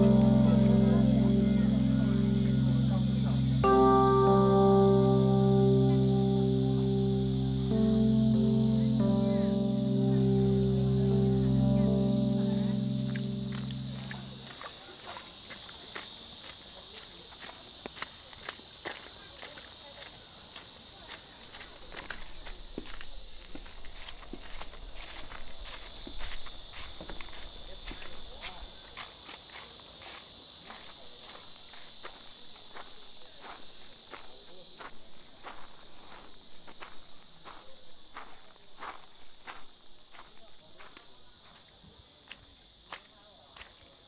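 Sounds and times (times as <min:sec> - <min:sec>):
high-pitched insect hum: 0:00.0 - 0:44.0
footsteps: 0:21.1 - 0:29.7.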